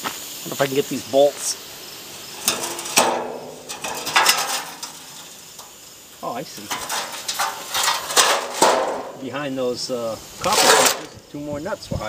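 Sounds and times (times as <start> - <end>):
metal knocks and clanks: 2.4 - 5.7, 6.6 - 9.2, 10.5 - 11.1.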